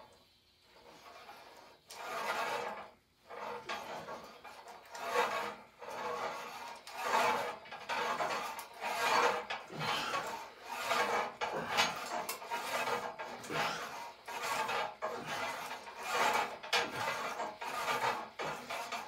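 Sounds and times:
cable rasping over pulleys: 0.7s - 19.0s.

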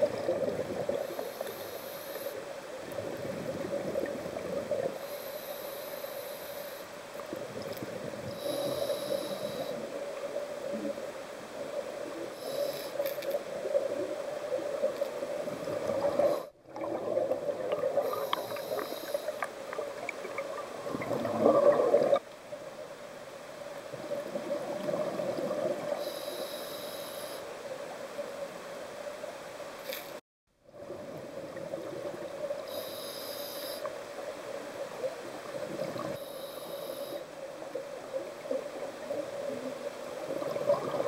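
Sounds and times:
gurgling exhaled bubbles: 0.0s - 1.2s, 2.9s - 5.0s, 15.4s - 19.0s, 19.8s - 22.2s, 23.9s - 26.0s, 40.2s - 41.0s
diver breathing through regulator: 0.9s - 2.4s, 4.9s - 7.0s, 8.3s - 9.8s, 12.3s - 13.2s, 18.0s - 19.5s, 26.0s - 27.5s, 32.7s - 33.9s, 36.2s - 37.3s.

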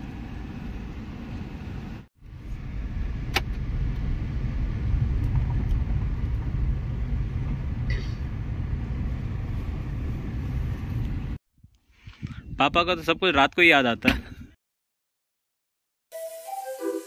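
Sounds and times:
car rumbling over rough road: 0.0s - 11.4s.

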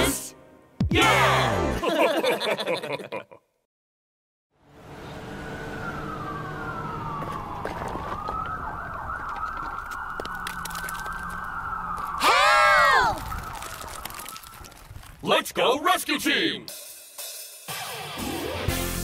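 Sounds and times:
emergency sirens wailing: 4.6s - 14.9s
loud rising and falling cry: 12.2s - 13.2s.

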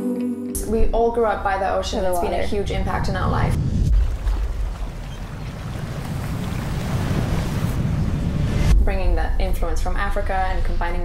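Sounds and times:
surf breaking on beach: 2.8s - 8.6s.

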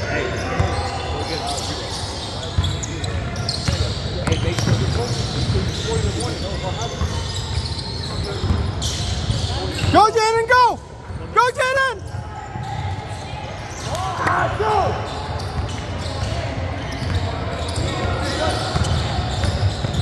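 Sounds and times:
sneakers squeaking: 0.0s - 20.0s.

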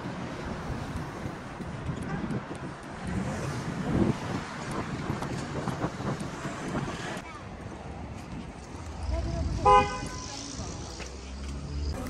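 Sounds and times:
wind buffeting microphone: 0.0s - 11.0s
road traffic passing: 0.0s - 12.0s.

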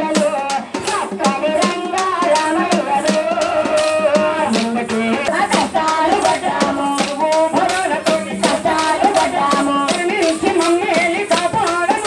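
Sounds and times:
person singing melody: 0.0s - 12.0s
rhythmic percussion: 0.0s - 12.0s.

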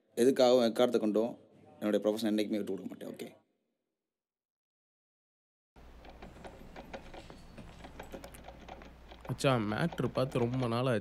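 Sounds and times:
typing clicks on a phone: 6.0s - 10.9s.

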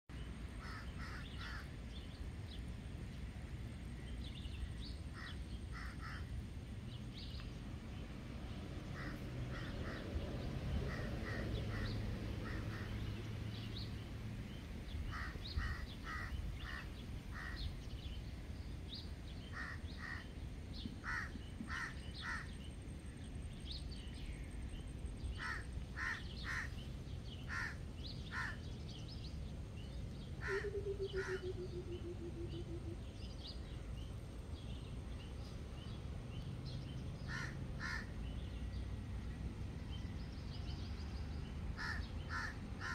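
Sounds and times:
low steady background noise: 0.1s - 42.9s
bird cawing: 0.6s - 1.7s, 5.2s - 6.3s, 10.8s - 13.1s, 15.1s - 17.6s, 19.5s - 20.3s, 21.0s - 22.5s, 25.4s - 26.8s, 27.5s - 28.6s, 30.4s - 32.6s, 37.3s - 38.2s, 41.8s - 42.9s.

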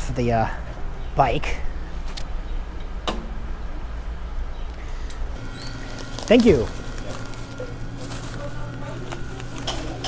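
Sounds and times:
electrical hum: 0.0s - 10.0s
low outdoor rumble: 0.0s - 10.0s.

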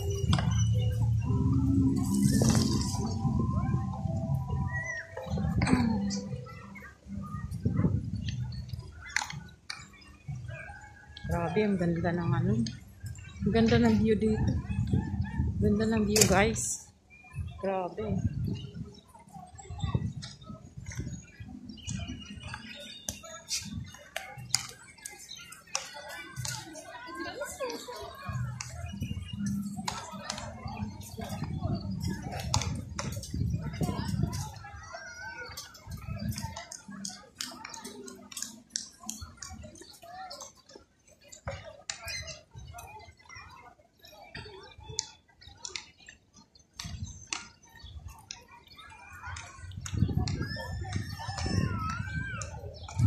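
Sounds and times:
wavering pitched calls: 0.0s - 6.7s
wind buffeting microphone: 0.0s - 9.6s, 11.2s - 24.5s, 28.2s - 37.0s, 49.4s - 53.0s
children's voices: 0.0s - 53.0s
faint music: 0.0s - 53.0s
people chattering: 0.0s - 53.0s.

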